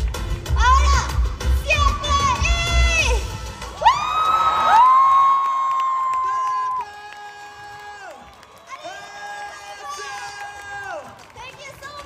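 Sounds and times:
dance music: 0:00.0 - 0:04.8
high-pitched cheering shouts: 0:01.7 - 0:11.9
crowd cheering: 0:03.6 - 0:12.0.

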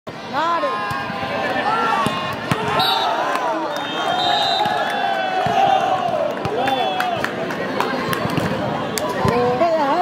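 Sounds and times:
people shouting: 0:00.4 - 0:07.2.

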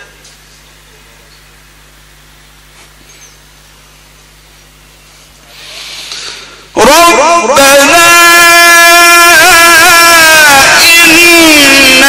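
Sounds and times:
low electrical hum: 0:00.0 - 0:12.0
microphone hiss: 0:00.0 - 0:12.0.

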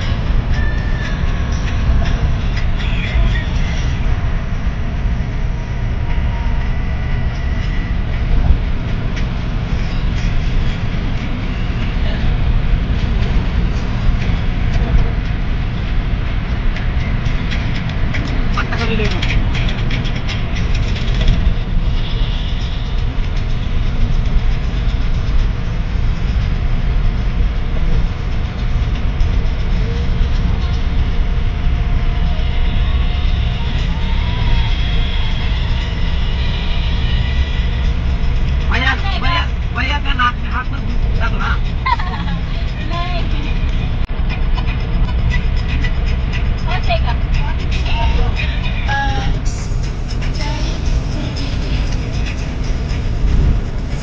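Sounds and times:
tyre and road noise: 0:00.0 - 0:54.0
voices or singing: 0:46.6 - 0:52.6.

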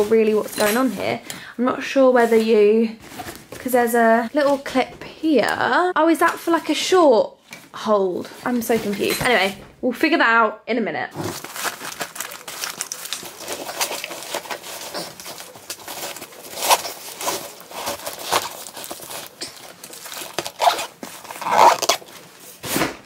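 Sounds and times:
fabric rustling: 0:11.1 - 0:23.0.

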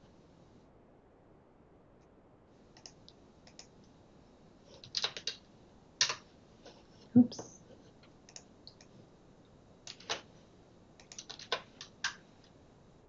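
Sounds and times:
computer keyboard typing: 0:02.8 - 0:03.7, 0:04.7 - 0:05.4, 0:09.8 - 0:10.3, 0:11.0 - 0:12.5.

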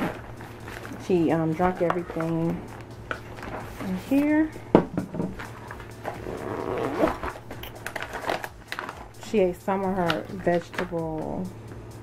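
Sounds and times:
plastic bag crinkling: 0:00.0 - 0:04.0, 0:05.4 - 0:10.8.

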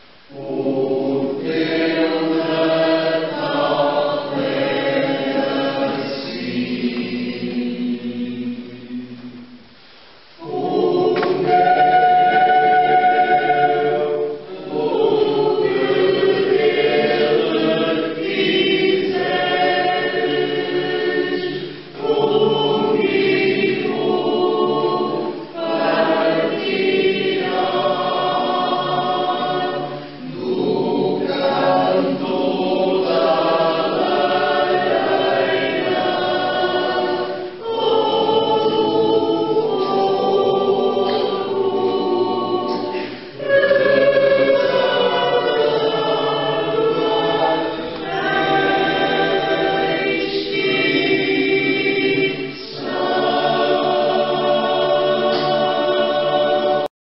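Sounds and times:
choir singing: 0:00.0 - 0:09.7, 0:10.3 - 0:56.9.

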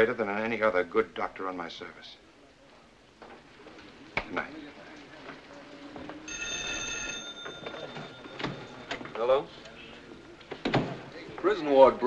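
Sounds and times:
desk telephone bell ringing: 0:06.2 - 0:09.6.

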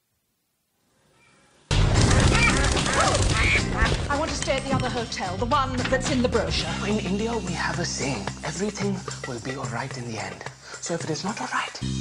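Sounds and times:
birds wings flapping: 0:01.8 - 0:04.8
birds calling: 0:02.4 - 0:04.6.

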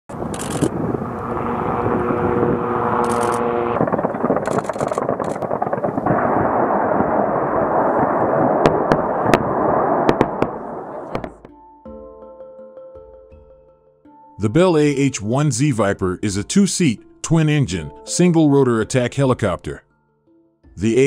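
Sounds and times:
sharp cracks: 0:00.1 - 0:01.3, 0:02.9 - 0:11.5
helicopter engine: 0:00.1 - 0:05.4
weapons fire and impacts: 0:03.8 - 0:11.4.

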